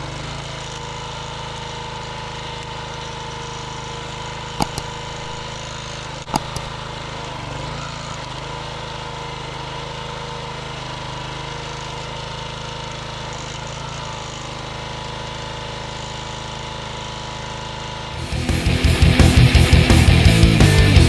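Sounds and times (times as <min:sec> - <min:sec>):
small gas engine running: 0:00.0 - 0:21.0
sharp clicks: 0:04.6 - 0:07.0.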